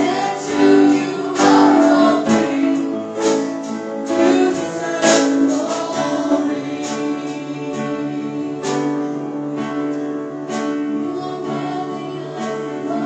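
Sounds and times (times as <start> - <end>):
people singing: 0.0 - 9.7, 10.8 - 13.0
worship band playing slow song: 0.0 - 13.0.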